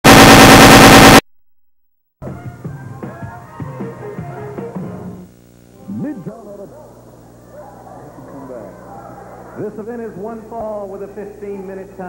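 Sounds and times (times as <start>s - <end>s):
harsh electronic buzz with rattle: 0.0s - 1.2s.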